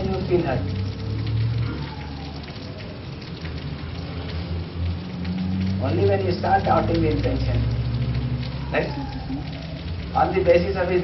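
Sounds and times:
crackling hiss: 0:00.0 - 0:11.0.

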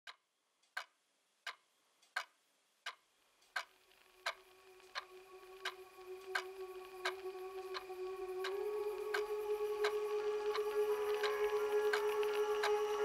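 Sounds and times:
clock ticking: 0:00.1 - 0:12.8
steady held tone: 0:04.1 - 0:13.0.

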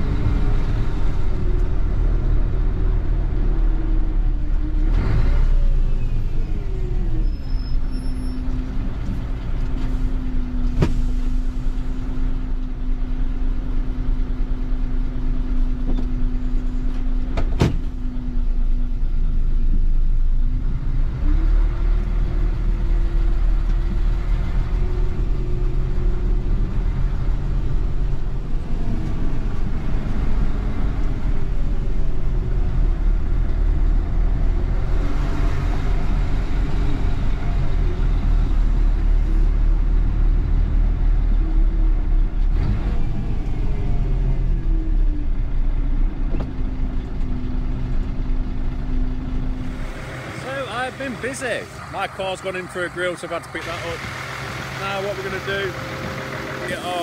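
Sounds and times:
diesel lorry engine: 0:00.0 - 0:57.0.

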